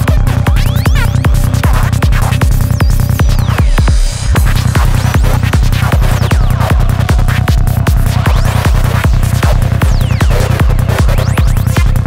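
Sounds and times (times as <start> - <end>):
fast electronic dance music: 0.0 - 12.0.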